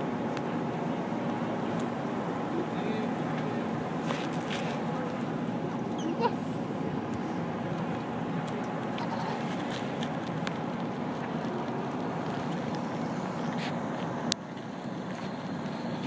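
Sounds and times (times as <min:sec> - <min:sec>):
vehicles passing slowly: 0:00.0 - 0:16.0.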